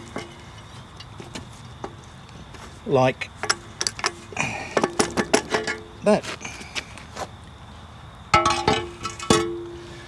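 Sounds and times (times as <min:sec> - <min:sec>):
metal bucket clanking: 0:03.4 - 0:05.9, 0:08.3 - 0:09.7.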